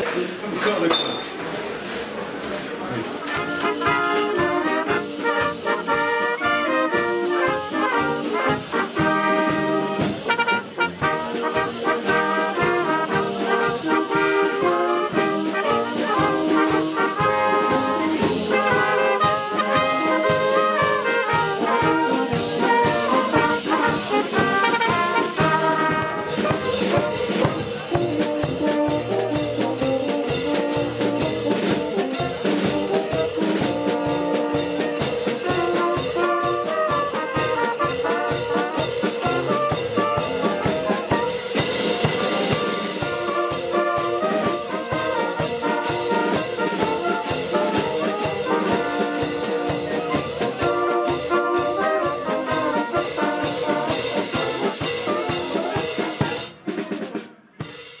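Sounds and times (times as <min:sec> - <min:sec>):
brass band playing: 0:02.8 - 0:58.0
bass drum and cymbal beat: 0:03.4 - 0:56.7.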